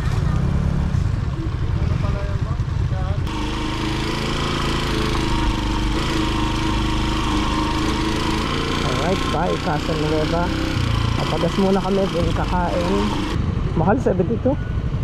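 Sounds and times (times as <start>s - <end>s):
motorcycle engine running under way: 0.0s - 15.0s
motorcycle engine idling: 1.0s - 15.0s.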